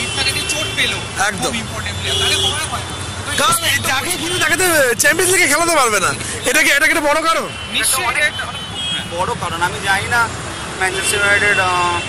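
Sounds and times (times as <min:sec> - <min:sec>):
man talking: 0:00.0 - 0:08.4
road traffic rumble: 0:00.0 - 0:12.0.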